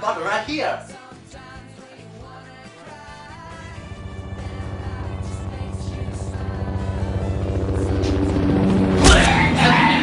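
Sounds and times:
background music: 0.0 - 10.0
helicopter rotor drone: 3.6 - 9.6.

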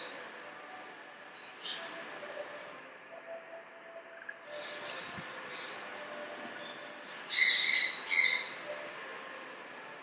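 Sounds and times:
steady background hum: 0.0 - 10.0
bird calling: 7.3 - 8.9.

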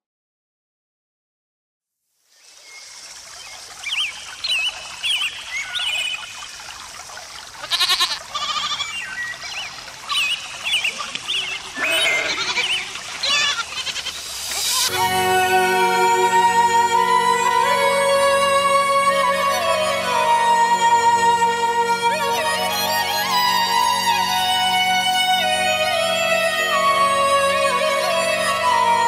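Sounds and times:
steady hiss: 2.3 - 29.0
flock bleating: 7.7 - 8.9, 11.8 - 14.2
music with sustained tones: 14.0 - 29.0.

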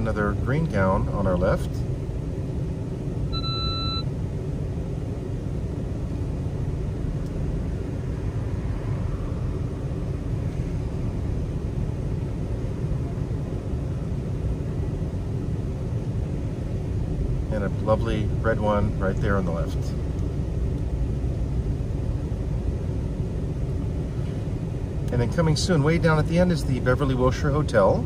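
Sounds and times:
car rumbling in traffic: 0.0 - 28.0
short electronic beep: 3.3 - 4.1.

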